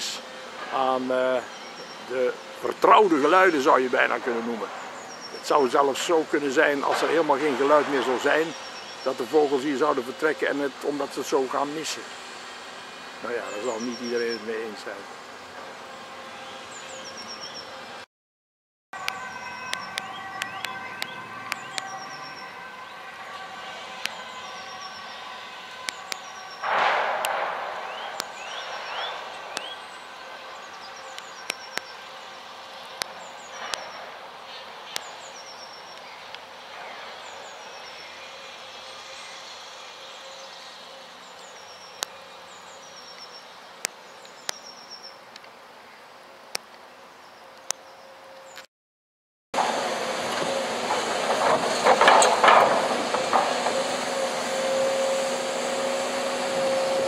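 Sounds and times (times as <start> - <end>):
distant traffic hum: 0.0 - 18.0, 19.0 - 48.6, 49.6 - 57.0
small birds chirping: 1.2 - 2.7, 4.8 - 6.1, 8.4 - 9.7, 16.3 - 17.8, 19.6 - 26.7, 27.9 - 45.3
loud burst: 26.3 - 29.8.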